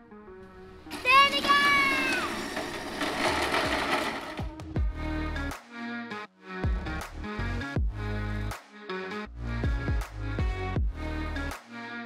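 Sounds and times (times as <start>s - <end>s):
wheels rolling roughly: 0.7s - 4.6s.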